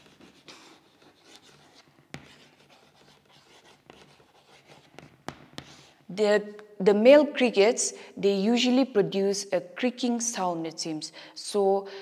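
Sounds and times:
chalk scratching on chalkboard: 0:00.0 - 0:06.0.

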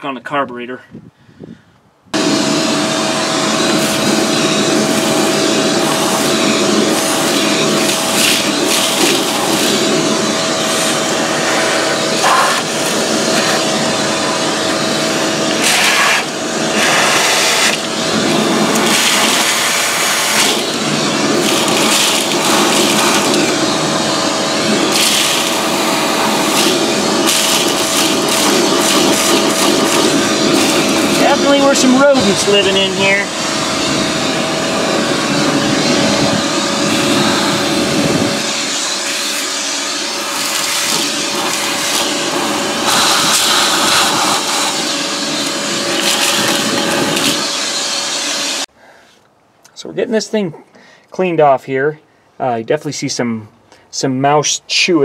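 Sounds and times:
shop vacuum running: 0:02.1 - 0:49.0
debris crackling up vacuum hose: 0:02.2 - 0:48.7.

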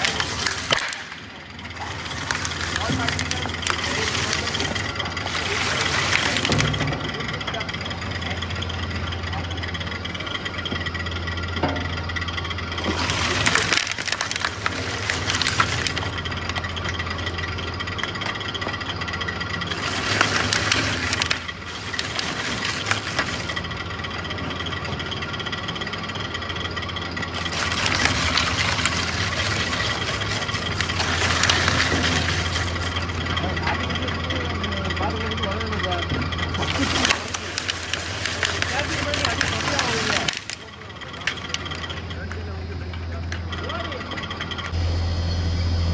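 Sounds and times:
rotary cutters shredding rubber: 0:00.0 - 0:44.8
shredder drive humming: 0:00.0 - 0:45.9.

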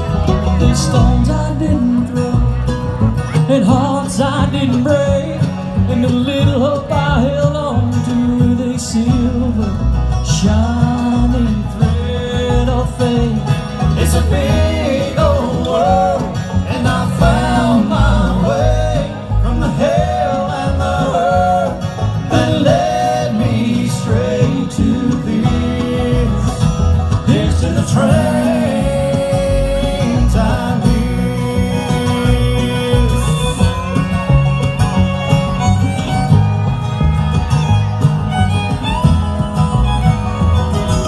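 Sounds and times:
acoustic guitars: 0:00.0 - 0:41.0
banjo: 0:00.0 - 0:41.0
upright bass: 0:00.0 - 0:41.0.

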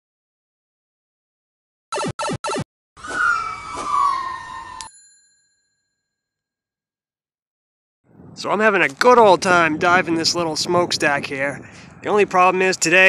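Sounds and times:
short electronic beeps: 0:01.9 - 0:02.6
tone sliding down in pitch: 0:01.9 - 0:04.9
bell-like ring: 0:04.6 - 0:06.4.

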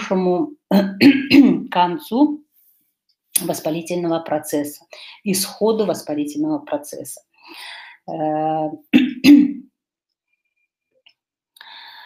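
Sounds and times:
woman clearing throat: 0:00.7 - 0:01.7, 0:08.9 - 0:09.7.

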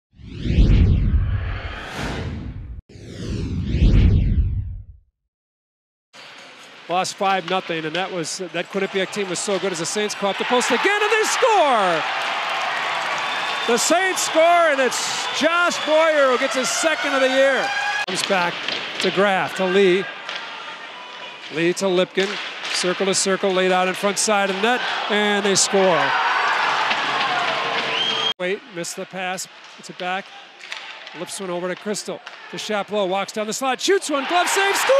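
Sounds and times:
deep low rumble: 0:00.2 - 0:05.0
whooshing transition effect: 0:00.2 - 0:05.0
crowd noise in arena: 0:06.2 - 0:34.9.

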